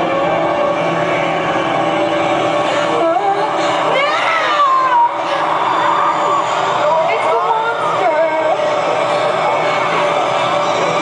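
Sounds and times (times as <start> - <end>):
concert music over sound system: 0.0 - 11.0.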